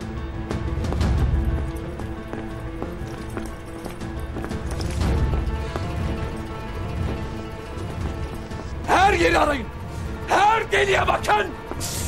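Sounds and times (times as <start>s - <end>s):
footsteps on hard ground: 0.0s - 10.2s, 11.1s - 12.0s
dramatic film music: 0.0s - 12.0s.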